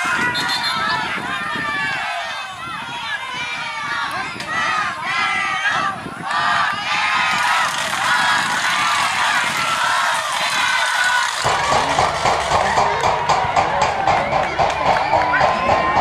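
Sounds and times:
men talking and shouting: 0.0 - 16.0
fast ticking beat: 11.4 - 16.0.

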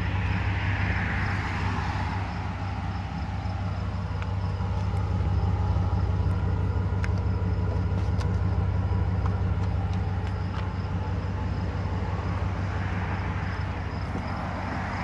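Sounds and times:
pickup engine idling: 0.0 - 15.0.

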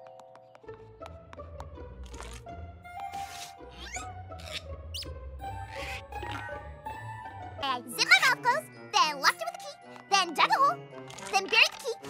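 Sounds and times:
light cartoon background music: 0.0 - 12.0.

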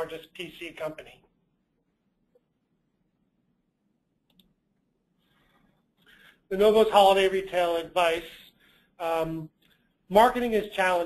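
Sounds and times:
faint click: 4.2 - 4.6.

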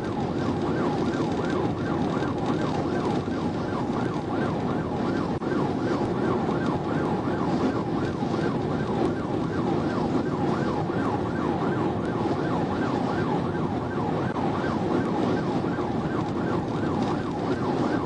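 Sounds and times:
police siren yelping: 0.0 - 18.0
road and engine noise: 0.0 - 18.0.

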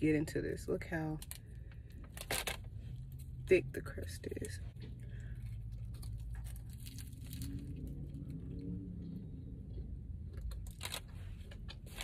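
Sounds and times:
chewing crunches: 4.8 - 8.6.

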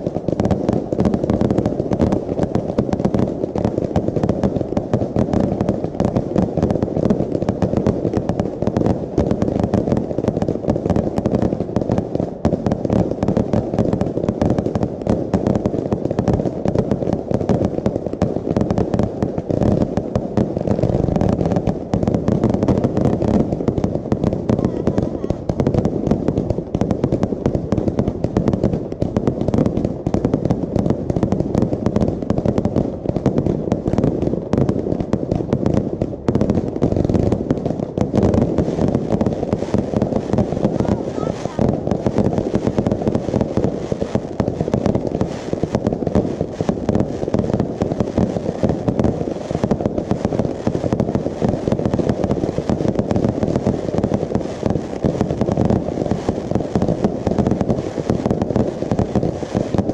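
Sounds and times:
fireworks launching and bursting: 0.0 - 59.9.

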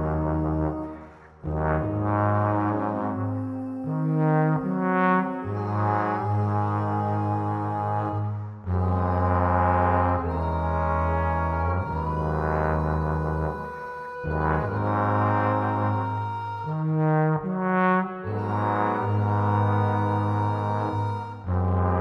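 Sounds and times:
trombone choir playing chords: 0.0 - 22.0
deep bass note: 5.6 - 16.7.

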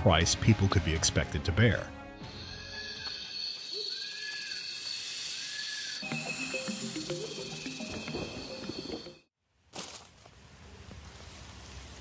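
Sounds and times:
jungle sound effects: 2.2 - 9.3
intro music: 6.0 - 9.1.

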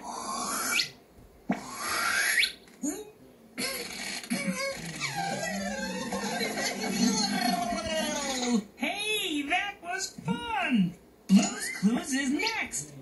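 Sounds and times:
cartoon rising whistles: 0.2 - 1.0, 1.7 - 2.6.

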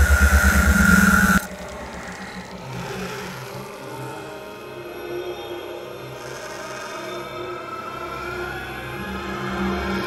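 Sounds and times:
steady high tone: 0.0 - 1.5
rapidly pulsing low rumble: 0.0 - 1.8.

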